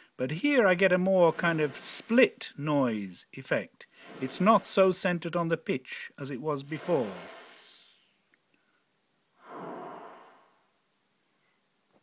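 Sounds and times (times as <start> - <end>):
high whistle sliding down: 6.6 - 8.1
synthesizer noise: 6.6 - 8.1.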